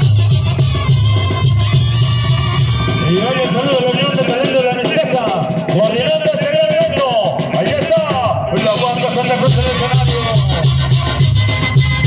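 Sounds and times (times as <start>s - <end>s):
tuba bass line: 0.0s - 3.8s, 8.6s - 12.0s
brass band music: 0.0s - 12.0s.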